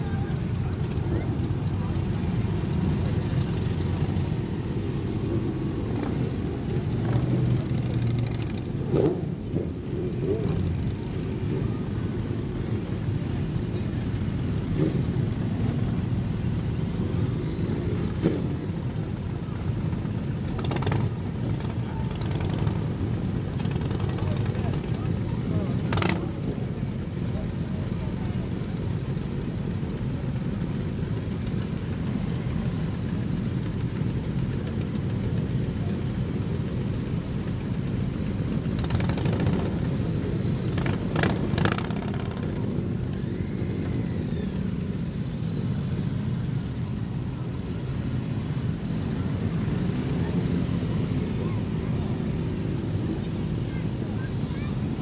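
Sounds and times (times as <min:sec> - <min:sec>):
motorcycle engines running: 0:00.0 - 0:55.0.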